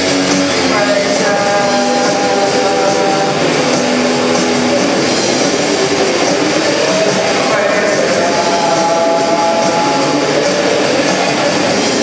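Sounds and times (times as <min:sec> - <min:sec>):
distorted guitar noise: 0:00.0 - 0:12.0.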